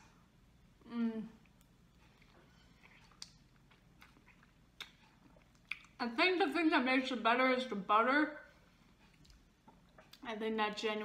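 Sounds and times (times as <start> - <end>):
faint chewing: 1.4 - 6.0, 8.8 - 10.3.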